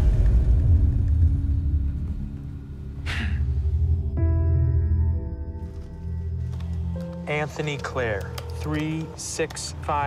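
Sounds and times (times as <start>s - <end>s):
deep low rumble: 0.0s - 6.9s.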